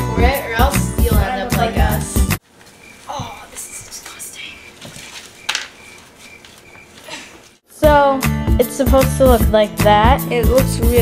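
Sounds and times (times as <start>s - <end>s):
paper towel rubbing floor: 2.4s - 7.6s.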